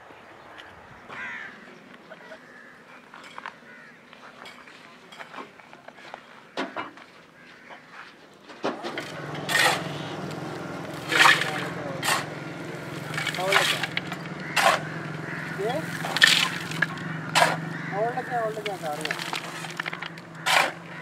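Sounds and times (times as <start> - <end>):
shovel scraping coal: 8.7 - 21.0
person speaking: 17.9 - 19.8.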